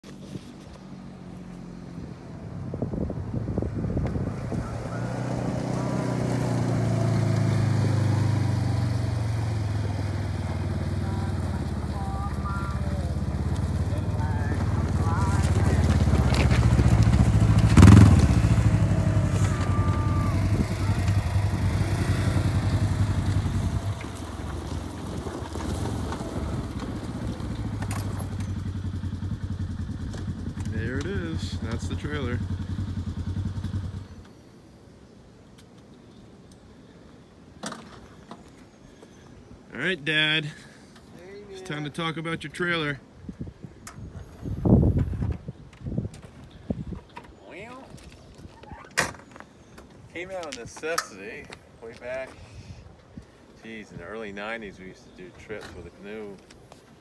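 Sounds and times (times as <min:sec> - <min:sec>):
off-road vehicle engine running: 0:00.5 - 0:34.4.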